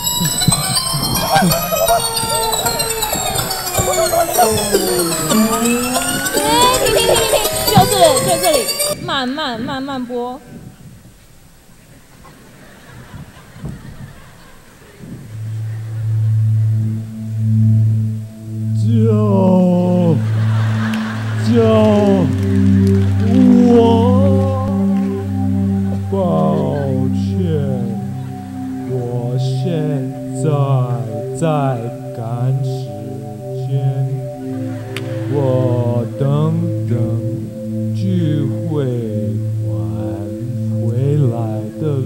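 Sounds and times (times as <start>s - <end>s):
voice crying with falling pitch: 0.0s - 10.2s, 18.9s - 32.4s
held music chord: 0.0s - 10.3s, 15.2s - 42.0s
low droning tone: 15.2s - 42.0s.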